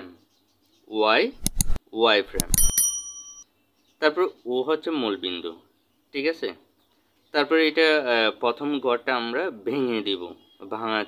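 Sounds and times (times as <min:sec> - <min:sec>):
quick clicks: 0:01.4 - 0:02.8
bell-like notification ding: 0:02.4 - 0:03.4.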